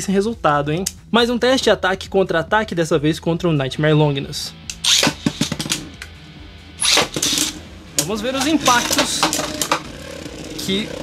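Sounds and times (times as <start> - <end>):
launcher ripping: 4.7 - 6.1, 6.8 - 10.0
spinning top clicking on plastic: 7.0 - 9.9.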